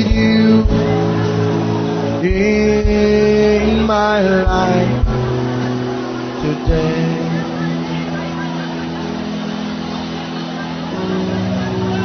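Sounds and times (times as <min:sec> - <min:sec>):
faint voices praying: 0:00.0 - 0:12.0.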